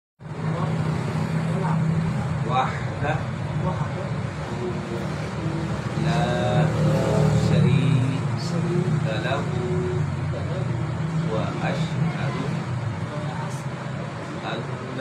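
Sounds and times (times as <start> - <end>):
low machine hum: 0.2 - 15.0
people talking: 0.3 - 15.0.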